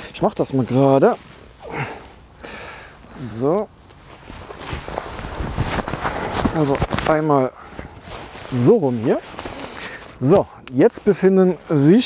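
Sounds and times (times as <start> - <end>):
nylon bag and clothing rustling: 0.0 - 2.2, 3.0 - 12.0.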